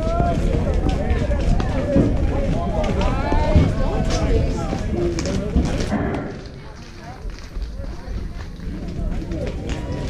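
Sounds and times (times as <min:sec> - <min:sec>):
low rumble: 0:05.7 - 0:10.0.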